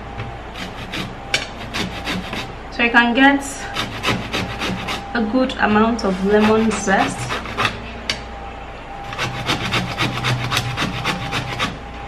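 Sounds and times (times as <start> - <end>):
lemon rasping on metal grater: 0.6 - 2.5, 3.7 - 5.1, 5.9 - 7.8, 9.1 - 11.8.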